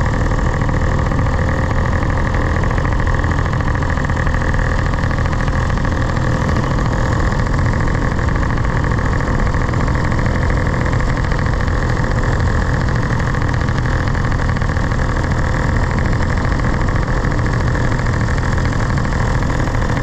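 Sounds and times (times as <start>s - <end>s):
paramotor engine drone: 0.0s - 20.0s.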